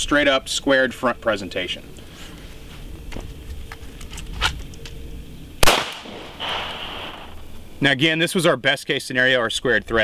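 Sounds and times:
handgun shot: 5.6s - 7.3s.

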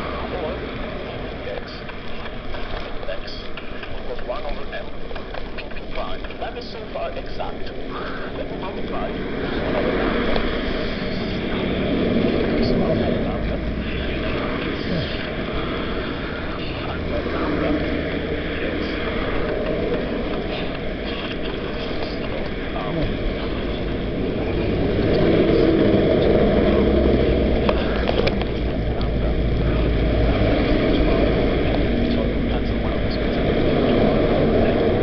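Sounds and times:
road traffic passing: 0.0s - 35.0s
wind: 0.0s - 35.0s.

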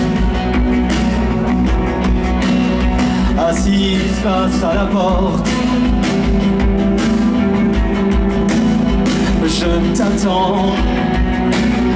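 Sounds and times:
electric guitar: 0.0s - 11.9s
live rock band playing: 0.0s - 11.9s.

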